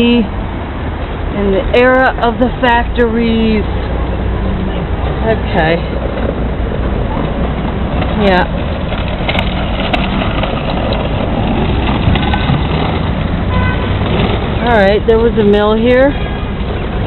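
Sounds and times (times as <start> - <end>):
low rumble of city background: 0.0 - 17.0.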